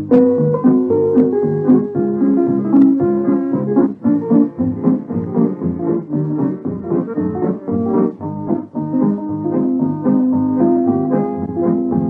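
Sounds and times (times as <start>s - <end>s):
country band instrumental: 0.0s - 12.0s
picked guitar lead: 0.0s - 12.0s.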